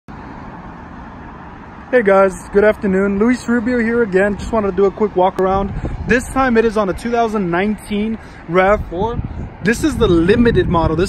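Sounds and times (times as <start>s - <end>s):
distant road traffic hum: 0.1s - 11.0s.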